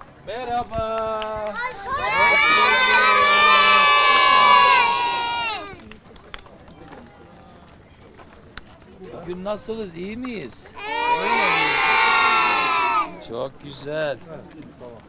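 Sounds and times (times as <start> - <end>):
children shouting and cheering: 1.4 - 5.8, 10.8 - 13.2.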